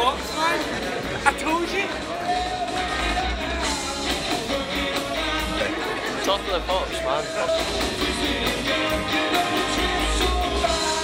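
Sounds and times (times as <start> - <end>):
rock and roll band with singing: 0.0 - 11.0.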